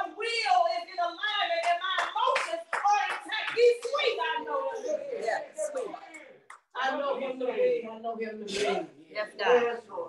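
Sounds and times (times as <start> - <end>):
hand claps: 1.6 - 4.1.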